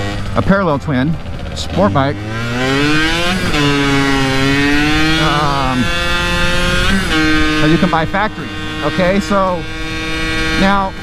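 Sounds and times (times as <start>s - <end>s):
two-stroke motorcycle engine: 0.0s - 11.0s.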